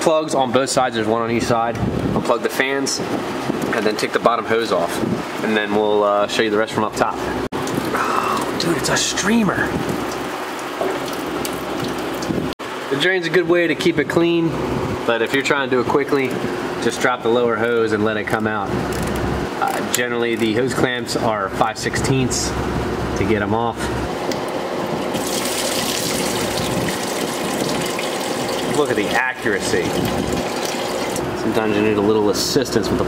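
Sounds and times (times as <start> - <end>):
coolant splashing into a drain pan: 7.6 - 12.5, 25.0 - 31.3.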